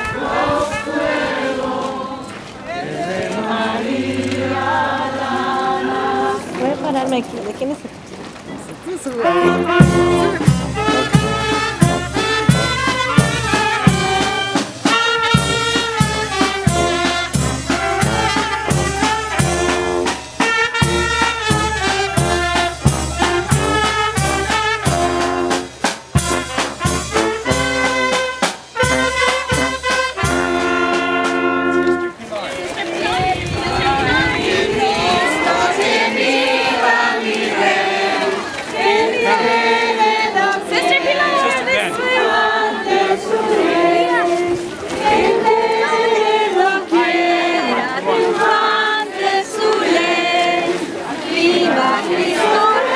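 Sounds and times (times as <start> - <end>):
marching brass band playing: 0.0 - 7.0, 9.2 - 52.9
crowd singing a hymn: 0.0 - 7.3, 9.2 - 52.9
steady drum beat: 9.4 - 31.4.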